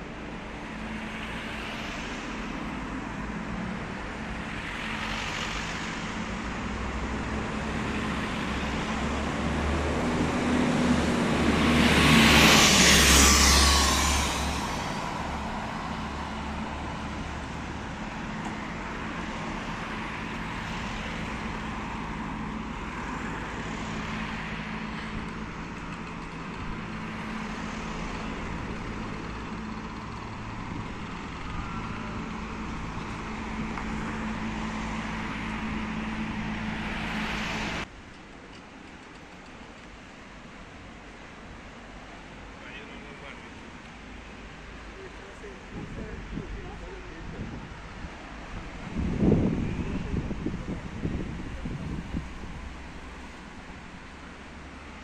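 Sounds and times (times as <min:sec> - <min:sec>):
cars going by: 0:00.0 - 0:55.0
vehicle passing close: 0:04.6 - 0:37.9.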